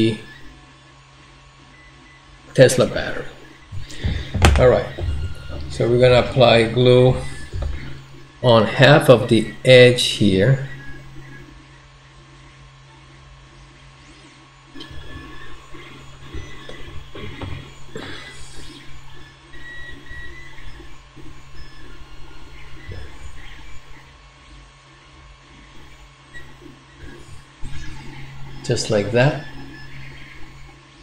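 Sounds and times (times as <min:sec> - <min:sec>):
steady low hum: 0:00.0 - 0:31.0.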